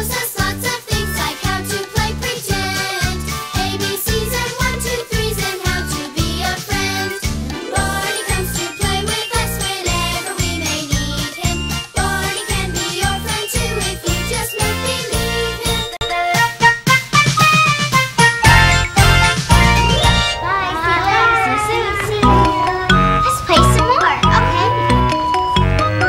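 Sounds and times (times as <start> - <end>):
upbeat instrumental theme music: 0.0 - 21.2, 22.1 - 26.0
bouncing bass beat: 17.2 - 20.3, 22.2 - 26.0
twinkling chime-like tones: 22.2 - 25.8.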